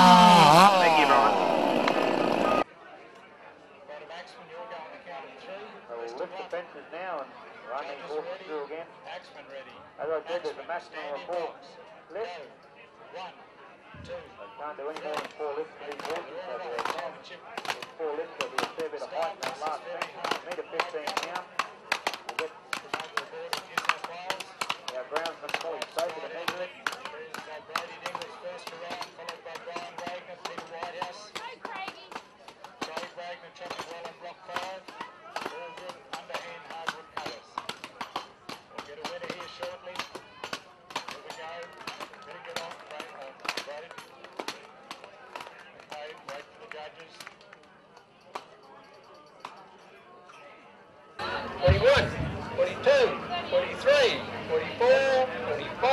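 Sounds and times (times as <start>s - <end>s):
axes chopping wood: 19.4s - 45.5s.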